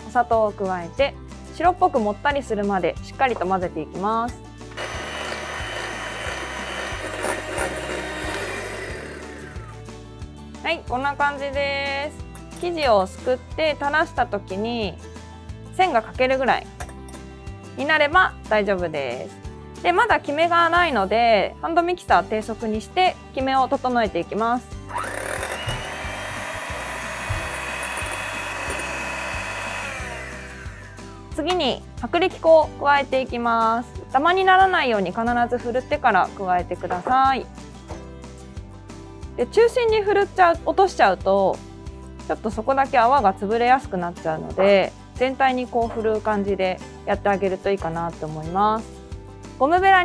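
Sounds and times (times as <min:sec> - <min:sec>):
background music: 0:00.0 - 0:50.0
electric hand mixer whipping: 0:04.8 - 0:09.9, 0:24.9 - 0:31.3.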